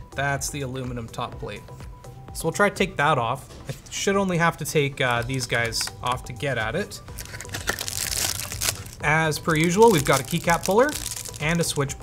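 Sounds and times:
plastic packaging crinkling: 0:07.1 - 0:11.8.

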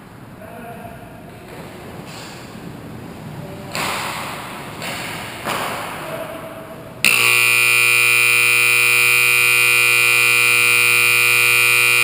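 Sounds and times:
scoreboard horn blast: 0:07.1 - 0:12.0.

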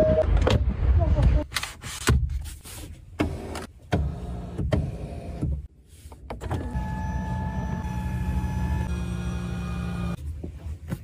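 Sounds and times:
electric seat motor hum: 0:06.7 - 0:10.2.

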